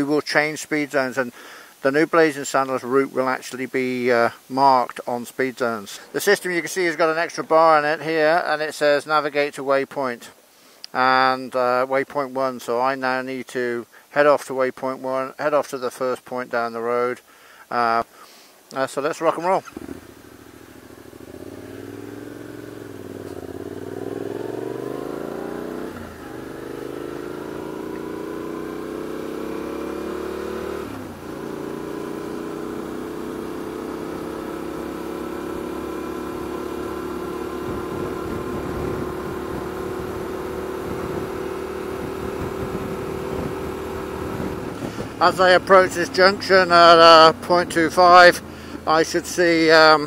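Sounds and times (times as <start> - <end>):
motorcycle engine accelerating: 19.7 - 48.9.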